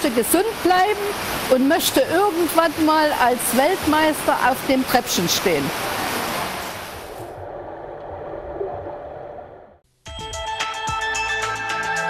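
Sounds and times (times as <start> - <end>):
splashing water: 0.0 - 7.2.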